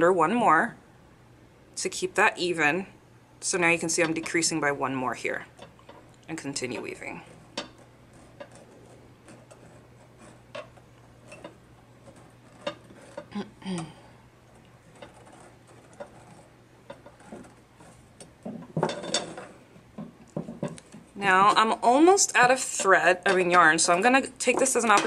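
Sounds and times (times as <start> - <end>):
handling noise: 14.6 - 25.0.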